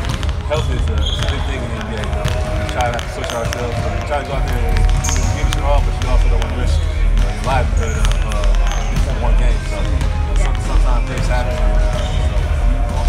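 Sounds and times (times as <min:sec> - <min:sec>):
basketballs bouncing on court: 0:00.0 - 0:13.0
man talking: 0:00.0 - 0:13.0.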